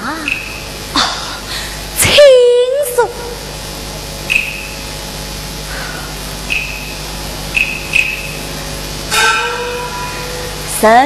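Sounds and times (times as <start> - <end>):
steady stage hum: 0.0 - 11.0
metal percussion ring: 9.1 - 10.9.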